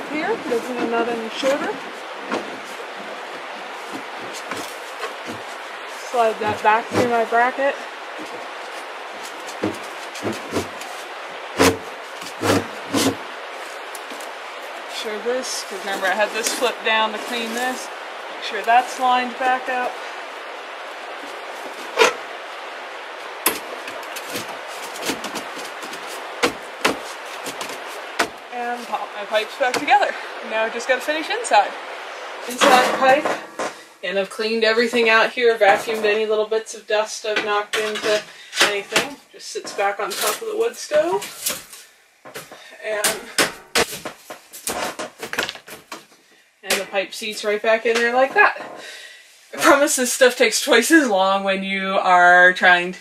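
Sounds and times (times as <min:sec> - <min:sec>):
steady hiss: 0:00.0 - 0:51.0.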